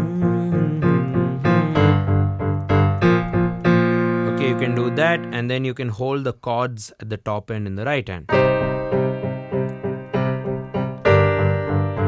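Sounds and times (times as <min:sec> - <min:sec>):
piano playing low chords: 0:00.0 - 0:05.6, 0:08.3 - 0:12.0.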